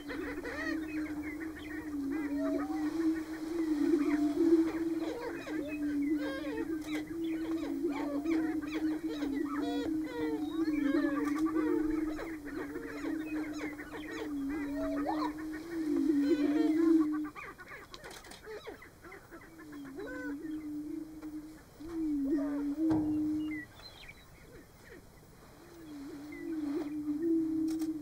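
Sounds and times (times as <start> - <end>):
prairie-chickens booming: 0.0 - 28.0.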